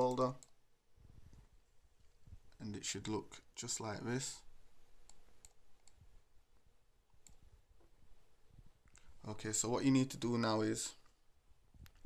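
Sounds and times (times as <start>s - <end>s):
computer mouse clicks: 5.0s - 6.0s.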